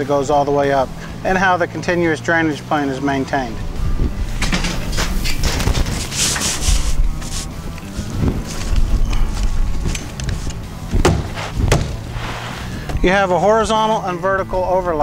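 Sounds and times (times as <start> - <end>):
metal mesh scraping against wall: 4.3 - 7.6.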